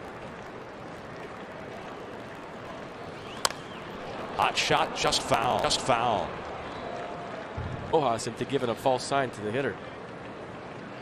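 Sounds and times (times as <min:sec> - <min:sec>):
murmur of stadium crowd: 0:00.0 - 0:11.0.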